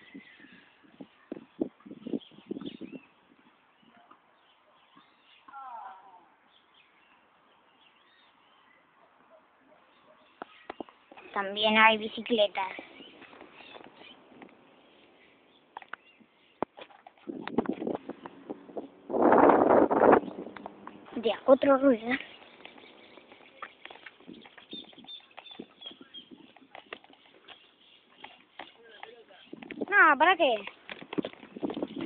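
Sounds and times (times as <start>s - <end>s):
birds chirping: 0.0s - 32.0s
person calling out: 5.5s - 6.3s.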